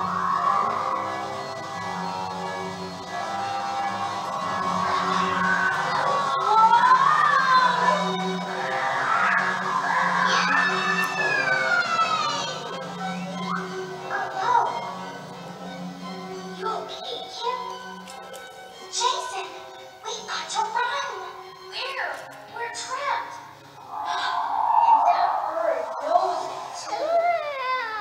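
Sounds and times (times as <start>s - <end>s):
orchestral cartoon music: 0.0s - 22.8s
rising sliding tone: 23.8s - 26.9s.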